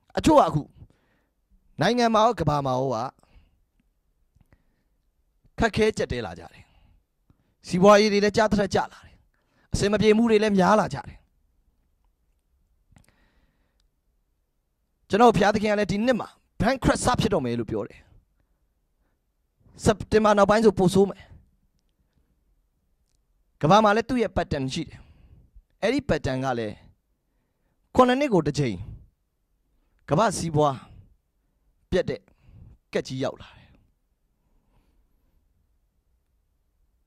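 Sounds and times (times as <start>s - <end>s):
man speaking into a microphone: 0.0s - 0.9s, 1.8s - 3.3s, 5.6s - 6.8s, 7.6s - 11.3s, 15.1s - 18.2s, 19.7s - 21.4s, 23.6s - 25.2s, 25.8s - 26.9s, 27.9s - 29.1s, 30.0s - 31.0s, 31.9s - 33.7s.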